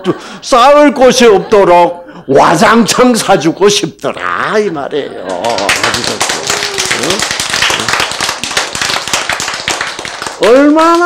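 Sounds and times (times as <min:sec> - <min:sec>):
audience applause: 0:05.3 - 0:11.0.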